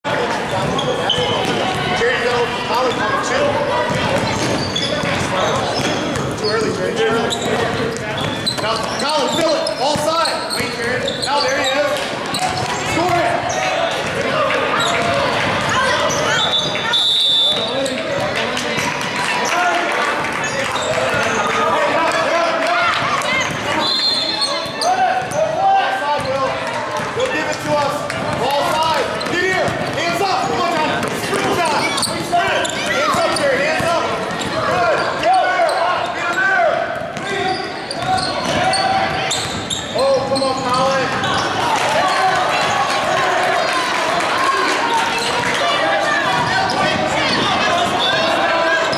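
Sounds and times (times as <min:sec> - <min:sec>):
indistinct voices echoing: 0:00.0 - 0:48.9.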